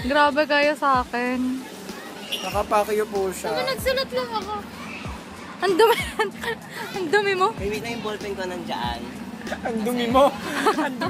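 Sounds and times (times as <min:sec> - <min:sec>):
high-pitched voices talking: 0:03.4 - 0:08.3.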